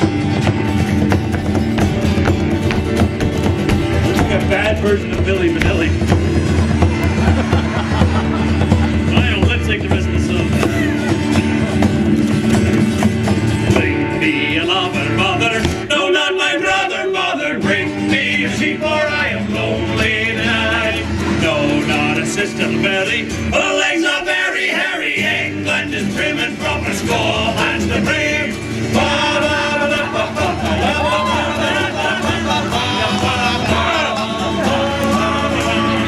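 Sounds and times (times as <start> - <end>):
acoustic folk band music: 0.0 - 36.0
guitars strumming: 0.0 - 36.0.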